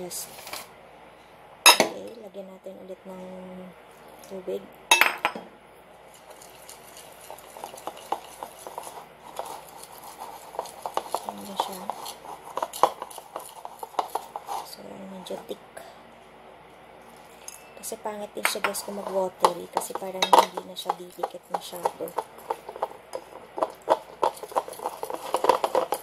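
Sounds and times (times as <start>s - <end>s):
whisk clinking and scraping bowl: 6.1s - 14.7s, 18.4s - 26.0s.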